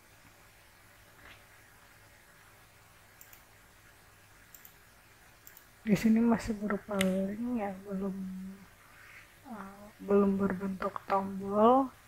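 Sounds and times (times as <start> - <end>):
low hiss: 0.0 - 12.0
computer mouse clicks: 3.2 - 3.6, 4.5 - 4.8, 5.4 - 5.7
person speaking: 5.8 - 8.7, 9.3 - 12.0.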